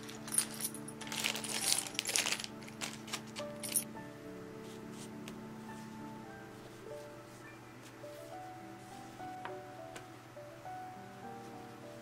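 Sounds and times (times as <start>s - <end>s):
soft background music: 0.0s - 12.0s
crinkly card sleeve handled: 1.0s - 3.7s
packaging rustling: 1.0s - 3.8s.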